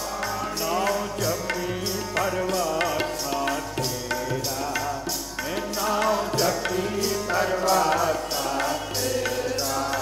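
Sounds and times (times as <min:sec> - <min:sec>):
man singing devotional melody: 0:00.0 - 0:10.0.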